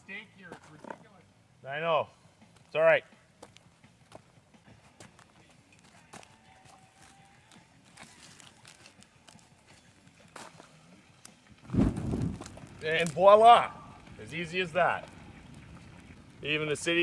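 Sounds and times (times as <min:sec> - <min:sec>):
footsteps on rock: 0:03.4 - 0:10.8, 0:11.7 - 0:13.2
fuel igniting whoosh: 0:11.6 - 0:13.2.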